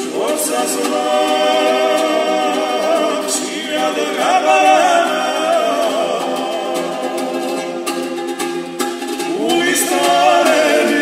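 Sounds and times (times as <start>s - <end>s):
a cappella vocal harmony: 0.0s - 8.3s, 9.2s - 11.0s.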